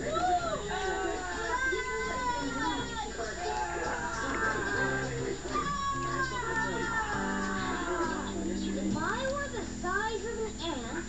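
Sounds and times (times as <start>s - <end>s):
music with held notes: 3.8s - 11.0s.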